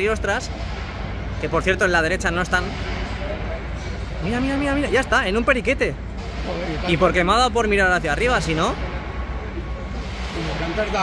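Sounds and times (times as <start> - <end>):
outdoor low rumble: 0.0 - 11.0.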